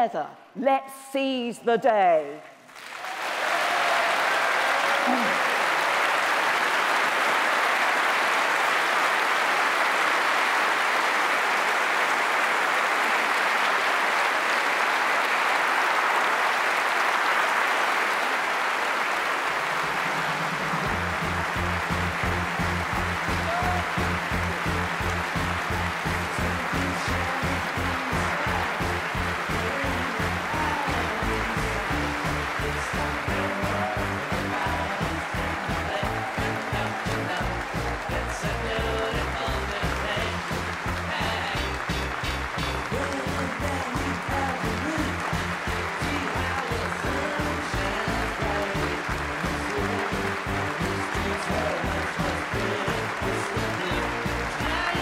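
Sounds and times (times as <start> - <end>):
large audience applauding: 2.4 - 55.0
music with a steady beat: 20.4 - 55.0.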